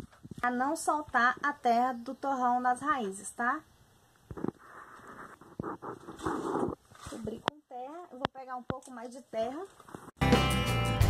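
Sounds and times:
hands rustling soil in a bucket: 0:04.6 - 0:08.1.

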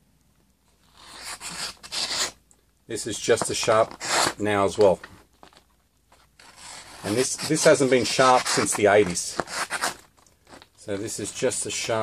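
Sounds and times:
knife slicing through paper: 0:06.4 - 0:10.0.

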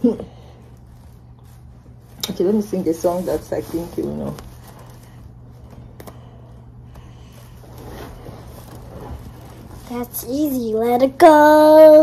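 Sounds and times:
faint rustles: 0:00.0 - 0:12.0
steady low hum: 0:00.0 - 0:12.0.

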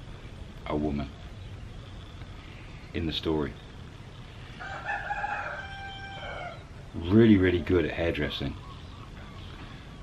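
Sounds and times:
rooster crowing: 0:04.6 - 0:06.8.

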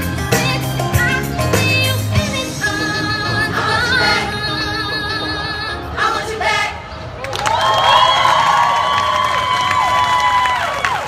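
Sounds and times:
audience cheering and whooping: 0:07.2 - 0:11.0
audience clapping: 0:07.2 - 0:11.0.

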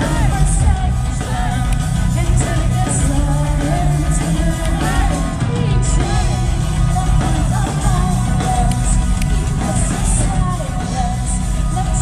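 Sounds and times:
metal band playing live: 0:00.0 - 0:12.0.

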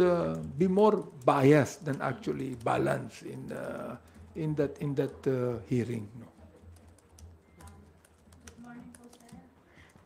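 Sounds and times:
keyboard typing clicks: 0:06.7 - 0:10.0.

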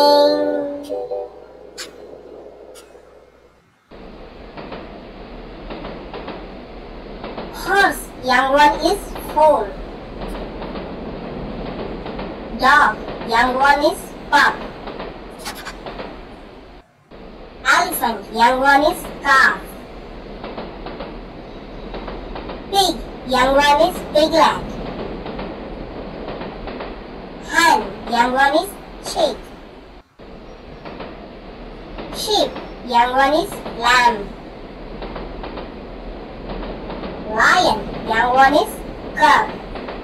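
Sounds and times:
cartoon train rolling: 0:00.0 - 0:40.0
faint wheel clacks: 0:03.9 - 0:17.5.

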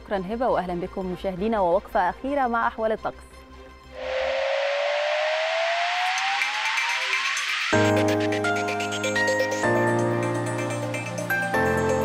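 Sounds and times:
rising whoosh with gliding tone: 0:04.0 - 0:07.9.

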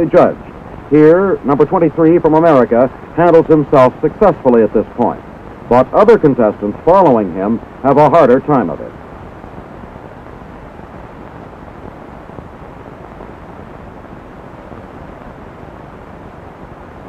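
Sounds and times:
low steady background noise: 0:00.0 - 0:17.0.

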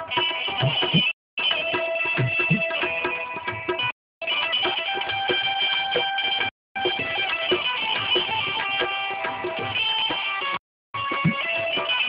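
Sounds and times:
drum strokes: 0:00.1 - 0:03.9, 0:11.0 - 0:12.0.

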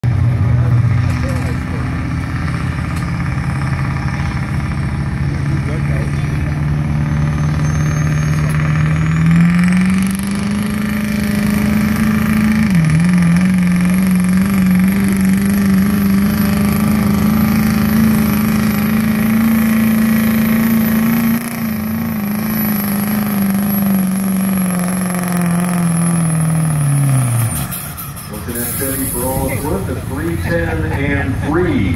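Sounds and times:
diesel engine under load: 0:00.0 - 0:31.9.

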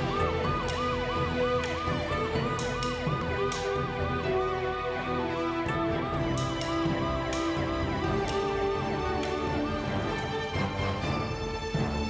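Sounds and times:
yelp siren: 0:00.0 - 0:07.8
theme music with percussion hits: 0:00.0 - 0:12.0.

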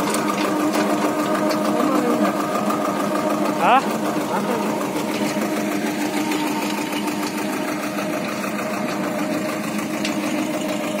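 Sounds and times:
engine running under load: 0:00.0 - 0:11.0.

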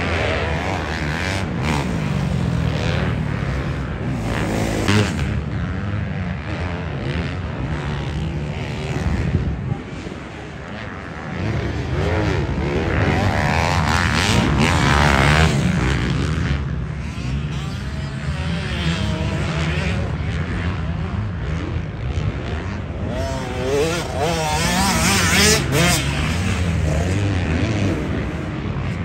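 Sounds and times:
dirt bike engines revving: 0:00.0 - 0:29.0.

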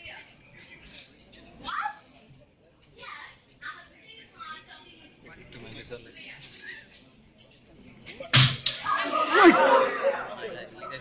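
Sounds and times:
sharp smacks: 0:08.4 - 0:08.8.

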